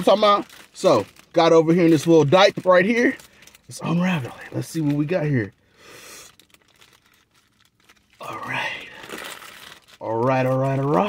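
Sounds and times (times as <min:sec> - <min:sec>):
paper wrapper crinkling: 0:00.0 - 0:11.0.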